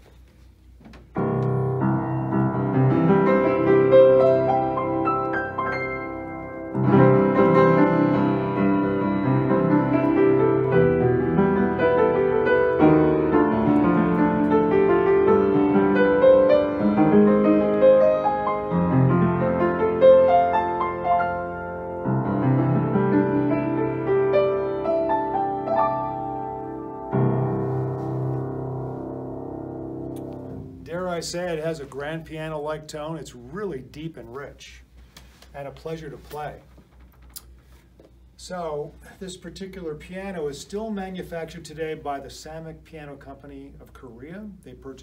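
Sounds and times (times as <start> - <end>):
upright piano chords: 1.1 - 33.2
man speaking: 30.9 - 34.9, 35.6 - 36.7, 38.4 - 45.0.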